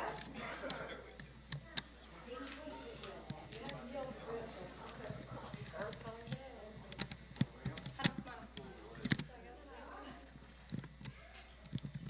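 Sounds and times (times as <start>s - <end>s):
chatter of voices: 0.0s - 11.8s.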